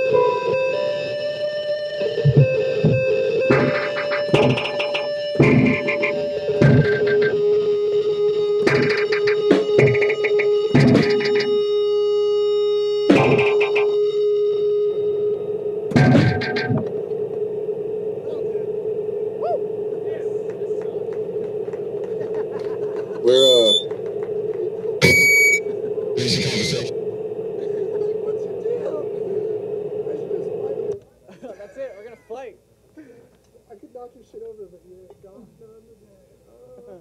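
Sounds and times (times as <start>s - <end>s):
band droning note: 0.0s - 31.0s
short noise bursts: 14.9s - 31.0s
sharp hits: 15.8s - 17.0s
warbling pitch glide: 18.2s - 27.0s.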